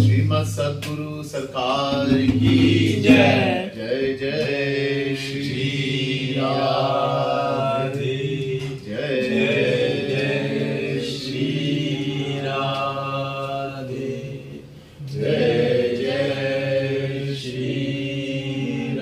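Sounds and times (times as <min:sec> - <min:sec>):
voices chanting held vowels: 0:01.6 - 0:19.0.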